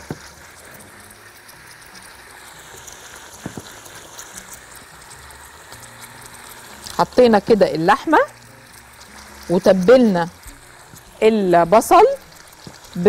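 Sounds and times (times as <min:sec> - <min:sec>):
meat sizzling in hot oil: 0:00.0 - 0:13.0.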